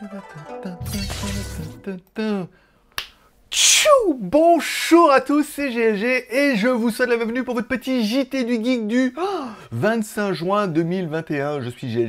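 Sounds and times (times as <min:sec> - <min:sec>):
person speaking: 0:01.6 - 0:02.6, 0:03.5 - 0:12.0
sharp snap: 0:03.0 - 0:03.2.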